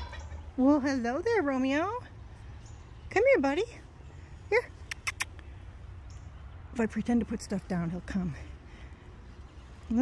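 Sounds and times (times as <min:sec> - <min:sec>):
woman speaking: 0:00.6 - 0:02.1, 0:03.1 - 0:04.9, 0:06.7 - 0:08.5
mouth clicking sounds: 0:04.8 - 0:05.6.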